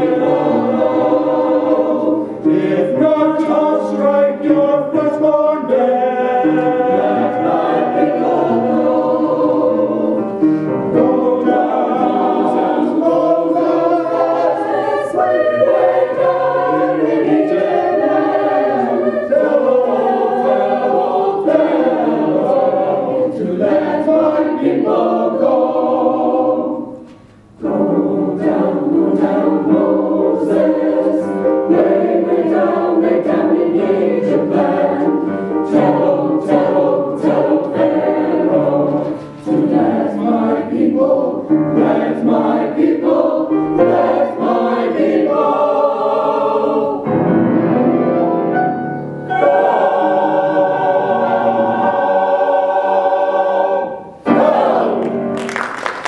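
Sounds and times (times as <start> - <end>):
mixed choir singing: 0.0 - 47.9, 48.8 - 56.0.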